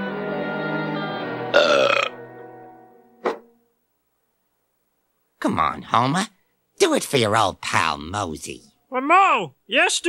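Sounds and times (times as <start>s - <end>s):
background music with held notes: 0.0s - 3.7s
loud rough burp: 1.5s - 2.2s.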